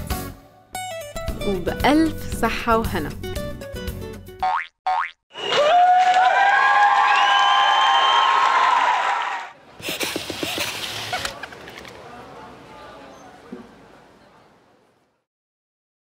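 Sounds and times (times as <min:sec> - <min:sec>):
music: 0:00.0 - 0:04.4.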